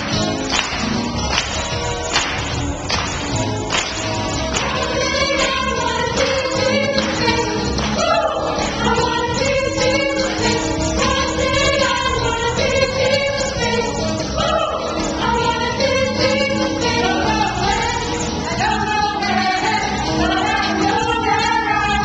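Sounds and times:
choir singing gospel song: 0:04.5 - 0:22.0.

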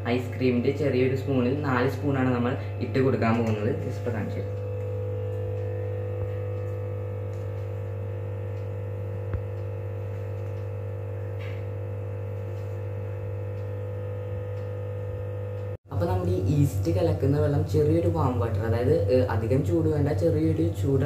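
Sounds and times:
steady electrical hum: 0:00.0 - 0:21.0.

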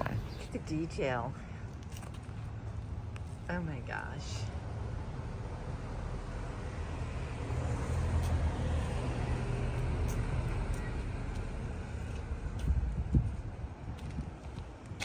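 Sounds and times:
road traffic rumbling: 0:00.0 - 0:15.0
vehicle passing: 0:03.8 - 0:13.8.

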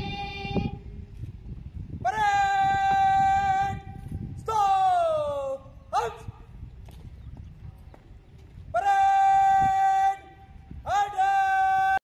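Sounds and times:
low outdoor rumble: 0:00.0 - 0:12.0
person shouting drill command: 0:02.0 - 0:06.4, 0:08.7 - 0:12.0.

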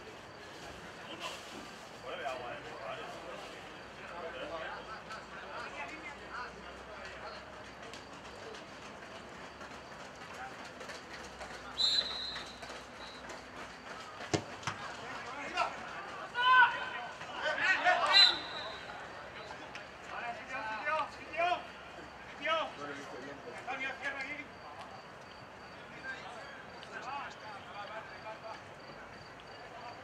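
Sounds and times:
referee's whistle blast: 0:11.8 - 0:13.2, 0:18.0 - 0:18.9
ball being kicked: 0:14.3 - 0:14.8
players shouting: 0:14.4 - 0:21.8.

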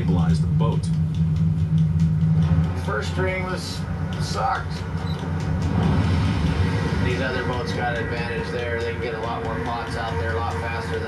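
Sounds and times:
boat engine rumble: 0:00.0 - 0:11.0.

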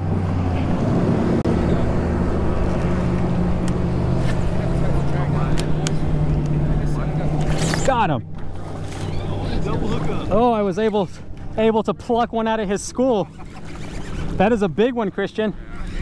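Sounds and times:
low motor drone: 0:00.0 - 0:16.0.

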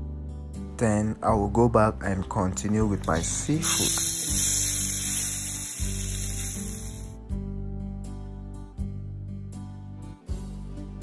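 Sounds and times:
background music low notes: 0:00.0 - 0:11.0
calamari sizzling in oil: 0:03.6 - 0:07.1.

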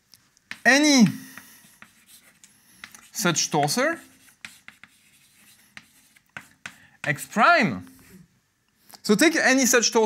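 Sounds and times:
chalk scratching on blackboard: 0:00.5 - 0:08.2.

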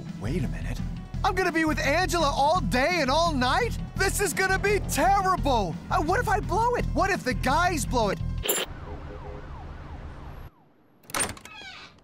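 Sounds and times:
low city rumble: 0:01.9 - 0:11.2
emergency vehicle siren: 0:08.5 - 0:11.0.

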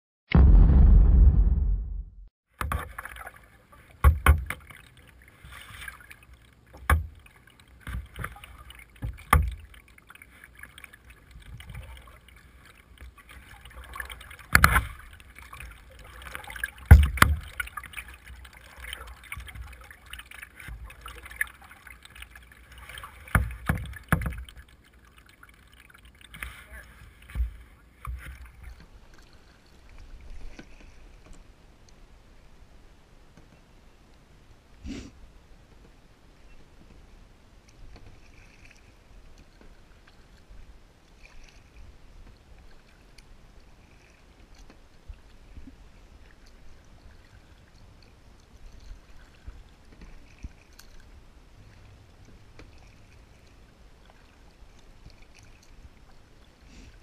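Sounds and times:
paddle splashing water: 0:02.5 - 0:32.5, 0:35.8 - 0:57.0
paddle knocking plastic hull: 0:03.9 - 0:04.8, 0:06.8 - 0:07.2, 0:07.8 - 0:09.7, 0:16.6 - 0:17.8, 0:23.2 - 0:24.6
sharp knocks on kayak: 0:04.0 - 0:04.6, 0:06.8 - 0:07.2, 0:16.9 - 0:17.6.

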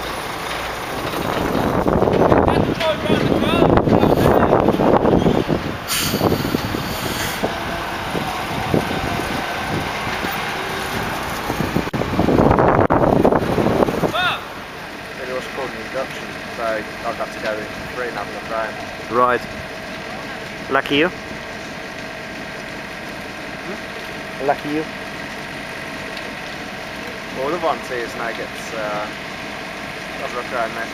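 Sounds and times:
lorry diesel engine running: 0:00.0 - 0:30.9
voices: 0:02.2 - 0:05.0, 0:07.4 - 0:11.5, 0:14.0 - 0:21.8, 0:25.7 - 0:29.2, 0:30.0 - 0:30.9
air hiss: 0:05.9 - 0:07.5.

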